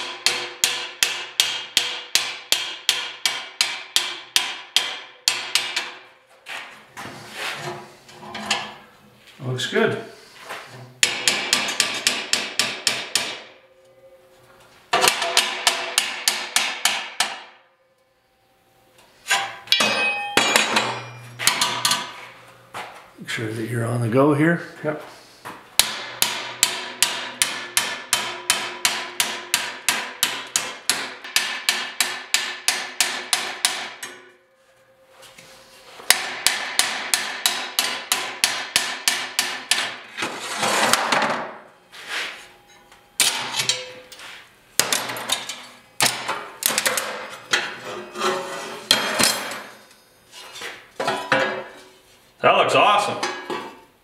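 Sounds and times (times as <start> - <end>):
hammer striking steel: 0.0 - 6.1, 11.0 - 14.2, 14.9 - 17.9, 19.3 - 22.3, 25.8 - 34.5, 35.9 - 40.1, 42.2 - 47.8.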